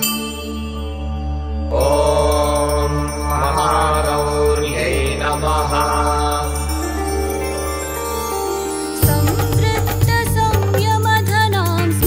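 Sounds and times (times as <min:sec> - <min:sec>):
steady drone: 0:00.0 - 0:10.1
person chanting a hymn: 0:01.7 - 0:07.5.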